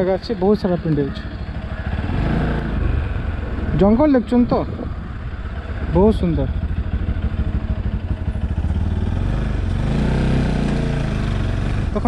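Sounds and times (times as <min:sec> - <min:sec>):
motorcycle engine running: 0:00.0 - 0:12.0.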